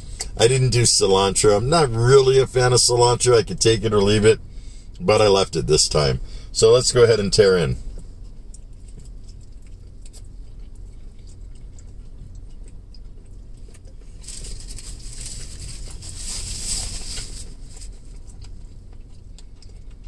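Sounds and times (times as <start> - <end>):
car interior hum: 0.0 - 20.0
man chewing food: 7.8 - 20.0
crinkly rustle: 13.5 - 20.0.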